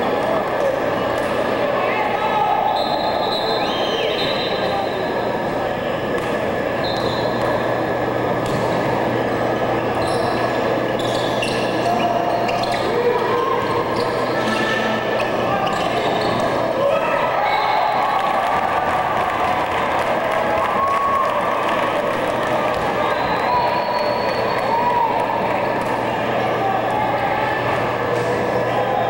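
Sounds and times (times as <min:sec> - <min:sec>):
crowd shouting and calling: 0:00.0 - 0:29.0
steady low hum: 0:04.7 - 0:17.3.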